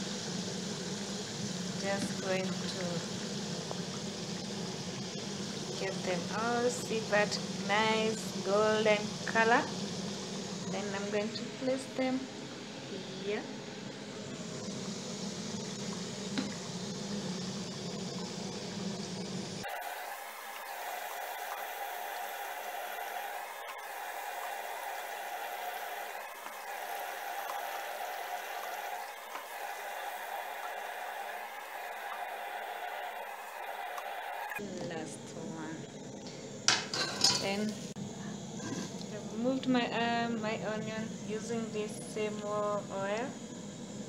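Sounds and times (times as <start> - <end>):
potatoes sizzling in hot oil: 0.0 - 13.3, 14.2 - 34.4.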